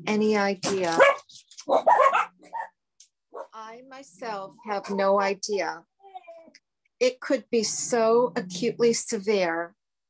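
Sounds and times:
dog barking: 0:01.0 - 0:03.6.

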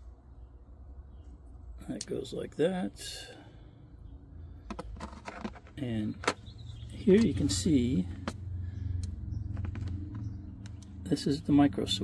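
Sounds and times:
person breathing: 0:03.2 - 0:04.8, 0:08.4 - 0:09.2
handling plastic housing: 0:04.6 - 0:08.4, 0:09.0 - 0:10.9.

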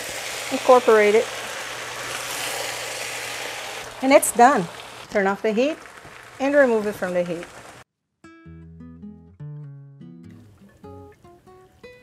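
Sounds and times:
food sizzling in a hot wok: 0:00.0 - 0:07.8.

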